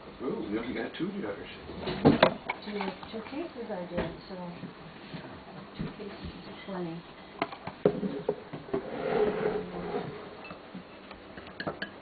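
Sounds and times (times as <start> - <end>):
glassware clinking: 11.6 - 12.0.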